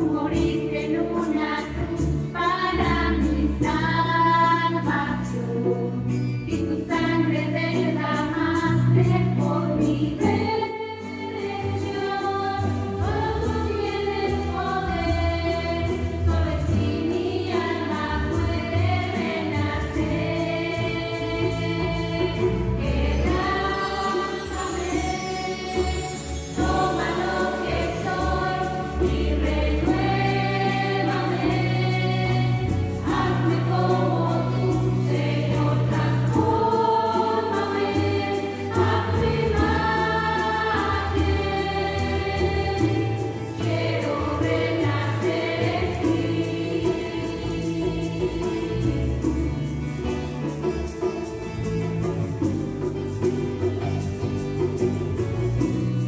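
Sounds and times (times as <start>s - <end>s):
church choir singing in harmony: 0.0s - 51.3s
electric bass guitar: 38.8s - 56.0s.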